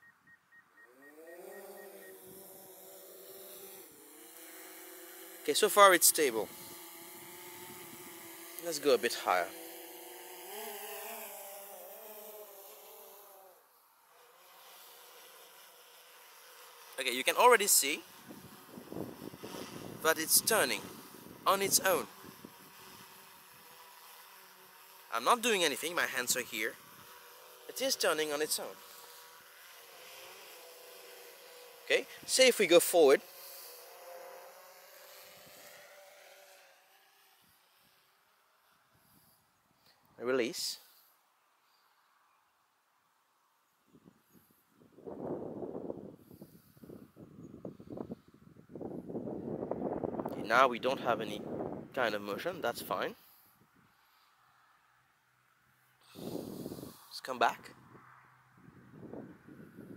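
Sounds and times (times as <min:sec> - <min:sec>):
drone propellers buzzing: 0:00.7 - 0:38.1, 0:56.0 - 0:58.0.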